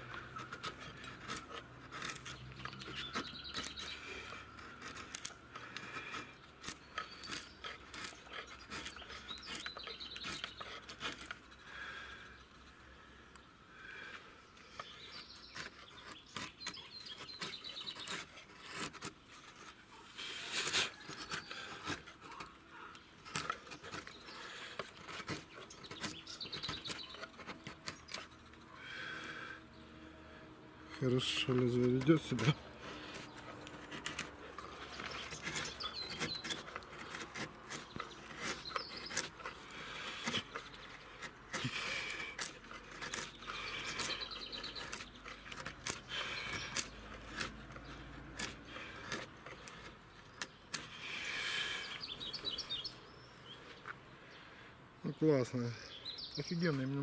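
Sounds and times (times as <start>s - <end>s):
wood cracking: 0.0s - 12.2s, 14.7s - 29.3s, 31.2s - 52.6s
chisel scraping wood: 0.0s - 13.1s, 13.9s - 53.0s.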